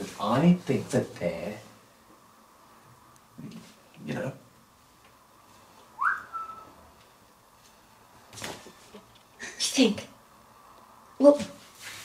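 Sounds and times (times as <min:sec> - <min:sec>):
person whistling: 0:06.0 - 0:06.7.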